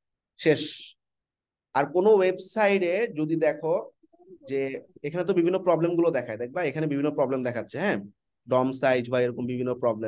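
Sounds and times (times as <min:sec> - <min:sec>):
man talking: 0:01.7 - 0:10.0.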